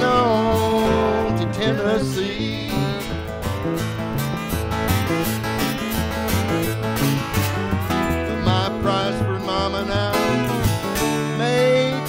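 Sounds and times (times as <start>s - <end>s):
repeating bass pattern: 0.0s - 11.7s
hollow-body electric guitar: 0.0s - 12.0s
lap resonator guitar: 0.0s - 12.0s.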